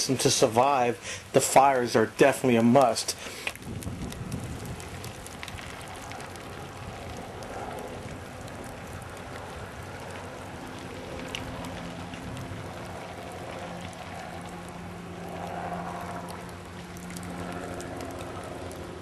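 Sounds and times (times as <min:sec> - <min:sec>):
brush fire crackling: 0:00.0 - 0:19.0.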